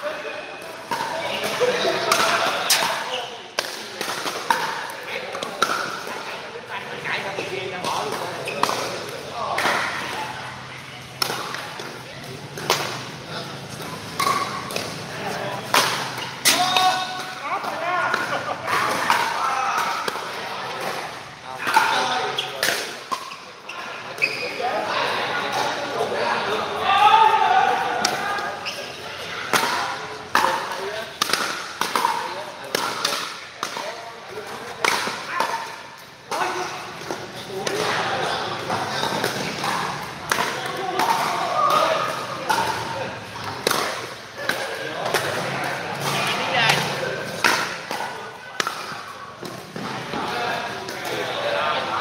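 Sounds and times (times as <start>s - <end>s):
people talking: 0.0s - 52.0s
paddles hitting ball: 7.8s - 10.1s, 11.1s - 21.0s, 29.5s - 35.6s, 38.6s - 51.2s
ball bouncing on court: 13.7s - 17.3s.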